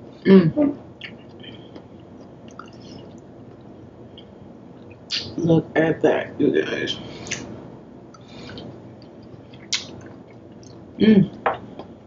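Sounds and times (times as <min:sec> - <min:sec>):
person chewing: 0:01.0 - 0:05.2, 0:08.1 - 0:11.9.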